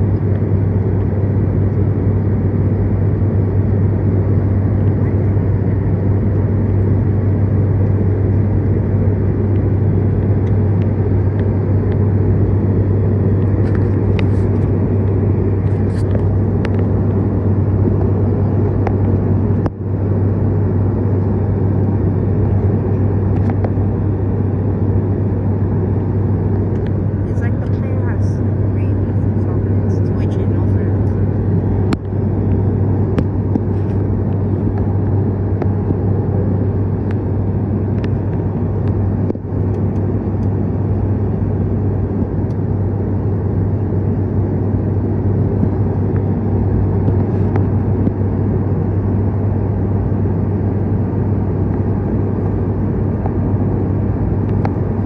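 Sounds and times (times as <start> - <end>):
low hum: 0.0 - 55.0
turboprop engine drone in cabin: 0.0 - 55.0.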